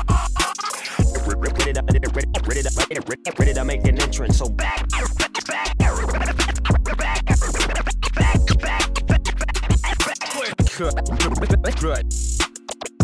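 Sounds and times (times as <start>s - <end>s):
hip hop beat: 0.0s - 13.0s
turntable record scratching: 0.0s - 13.0s.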